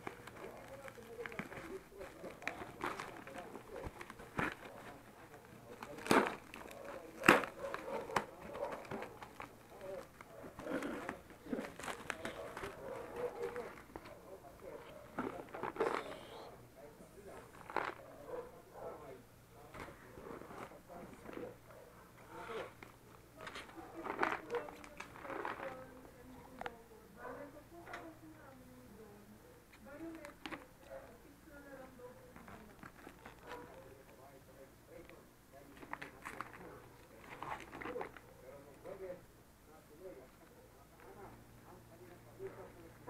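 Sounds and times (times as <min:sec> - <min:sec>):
plastic packaging crinkling: 0:00.0 - 0:14.3, 0:23.4 - 0:26.7, 0:35.7 - 0:38.2.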